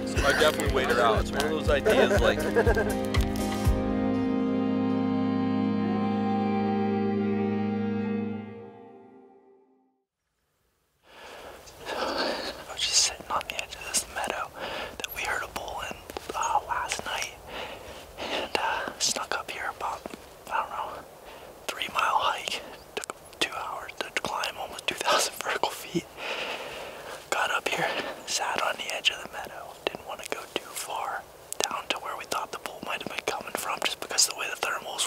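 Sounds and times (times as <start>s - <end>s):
man whispering: 0.0s - 2.4s, 11.7s - 26.2s, 27.1s - 35.0s.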